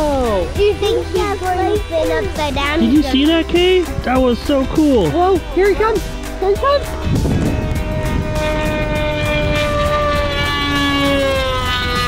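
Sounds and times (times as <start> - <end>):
wind buffeting microphone: 0.0 - 12.0
model airplane engine whine: 6.8 - 12.0.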